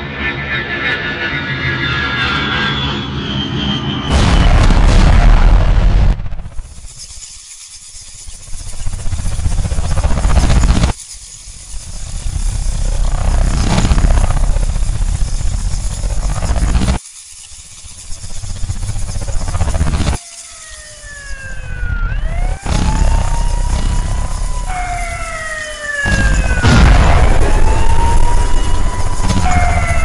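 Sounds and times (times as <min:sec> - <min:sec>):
siren wailing: 0:19.2 - 0:30.0
loud rumbling roar: 0:26.0 - 0:30.0.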